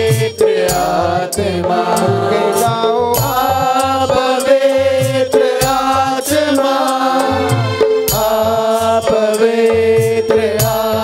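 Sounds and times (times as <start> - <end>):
man singing into microphone: 0.0 - 11.0
repeating rhythmic beat: 0.0 - 11.0
held chords: 1.4 - 6.4.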